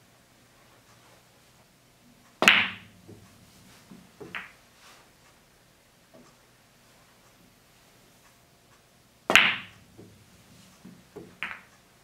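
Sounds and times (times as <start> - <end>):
pool balls clicking: 2.3 - 4.6, 9.2 - 11.9.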